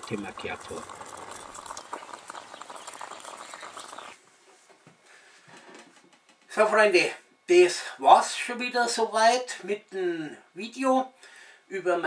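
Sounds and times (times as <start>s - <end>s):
coffee bubbling and sputtering: 0.0s - 4.2s
faint hiss: 0.0s - 5.8s.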